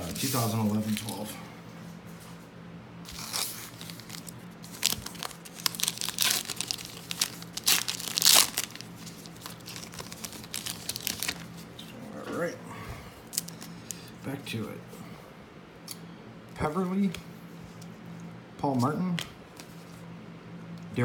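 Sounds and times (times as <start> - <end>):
wrapper tearing and crinkling: 3.1 - 11.7, 13.3 - 14.0.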